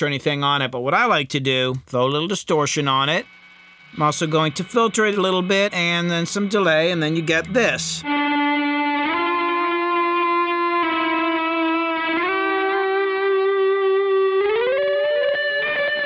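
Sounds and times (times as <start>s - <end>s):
sustained distorted electric guitar: 2.8s - 16.0s.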